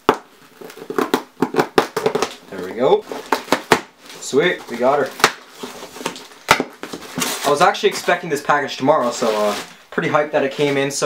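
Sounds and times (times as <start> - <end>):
sharp cracks: 5.0 - 5.5.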